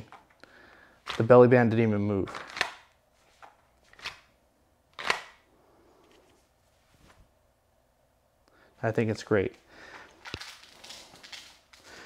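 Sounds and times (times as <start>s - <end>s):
clothing rustling: 3.1s - 4.2s, 6.0s - 7.4s, 9.8s - 12.0s
pistol holster clicks: 5.0s - 5.4s.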